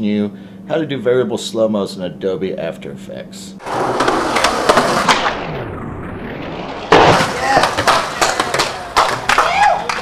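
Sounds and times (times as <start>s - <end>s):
skateboard wheels rolling on concrete: 3.6s - 5.4s, 6.6s - 10.0s
skateboard clacks: 3.7s - 5.2s, 7.1s - 10.0s.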